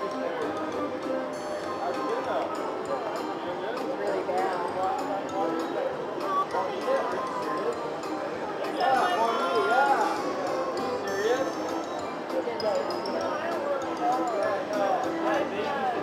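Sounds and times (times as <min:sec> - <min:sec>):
background chatter: 0:00.0 - 0:16.0.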